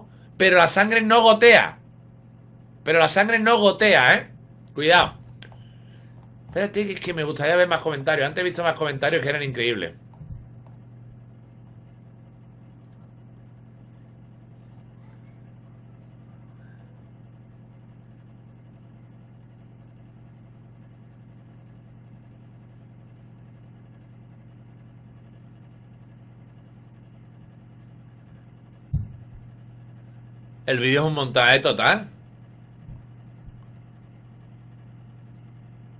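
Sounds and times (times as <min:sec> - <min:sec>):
low background hum with hiss: 0:00.0 - 0:35.9.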